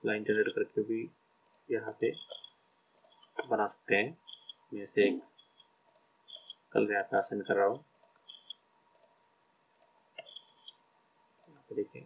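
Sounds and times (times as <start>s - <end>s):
computer mouse clicks: 1.4s - 3.5s, 5.4s - 7.2s, 7.8s - 11.6s.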